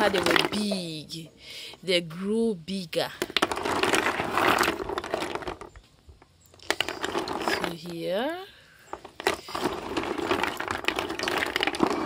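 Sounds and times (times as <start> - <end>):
snail shells clacking together: 3.1 - 12.0.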